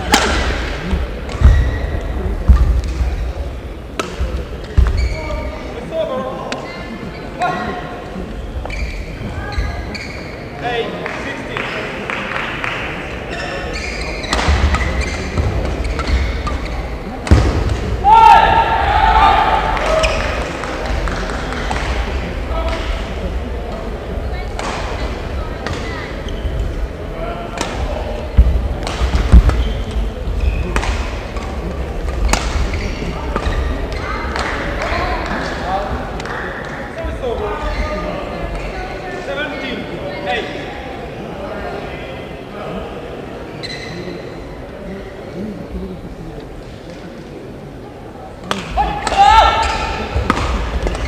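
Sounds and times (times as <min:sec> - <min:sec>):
shoes squeaking on court floor: 0:00.8 - 0:02.8, 0:04.0 - 0:05.7, 0:06.6 - 0:07.5, 0:08.3 - 0:10.6, 0:13.3 - 0:17.2, 0:25.5 - 0:26.8, 0:28.3 - 0:34.8, 0:43.5 - 0:44.5
rackets striking shuttlecocks: 0:30.6 - 0:35.4, 0:48.4 - 0:51.0.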